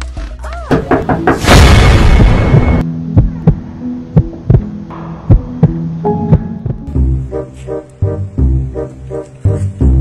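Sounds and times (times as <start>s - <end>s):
heartbeat thumps: 2.2s - 7.2s.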